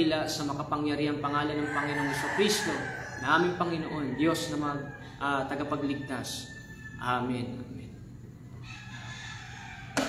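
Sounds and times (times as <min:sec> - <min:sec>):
rooster crowing: 0:01.4 - 0:07.4, 0:08.5 - 0:10.0.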